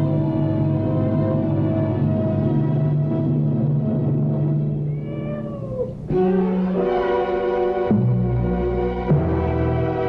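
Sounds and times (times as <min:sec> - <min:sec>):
cat meowing: 0:04.8 - 0:07.3.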